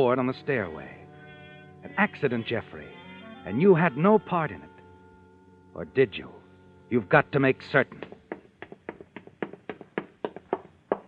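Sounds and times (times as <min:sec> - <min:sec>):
footsteps up wooden stairs: 0:08.0 - 0:11.0.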